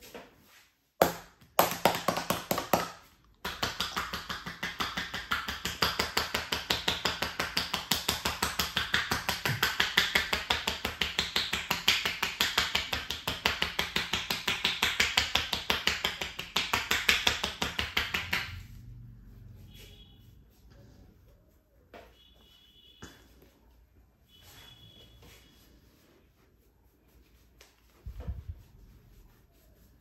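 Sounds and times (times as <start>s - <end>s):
hands clapping on a back: 1.0s - 18.7s.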